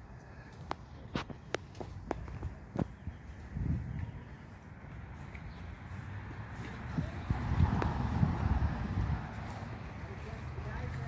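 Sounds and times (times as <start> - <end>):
footsteps on grass: 0.4 - 11.0
faint background voices: 5.9 - 11.0.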